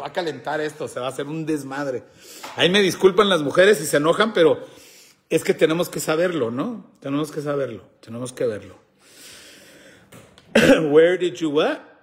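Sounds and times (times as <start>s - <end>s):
man speaking: 0.0s - 4.7s, 5.3s - 8.9s, 10.6s - 12.0s
man coughing: 10.5s - 11.2s.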